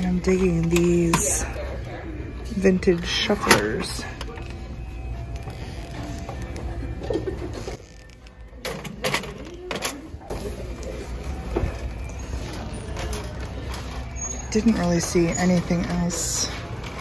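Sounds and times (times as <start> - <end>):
plastic objects clattering in cart: 8.7 - 17.0.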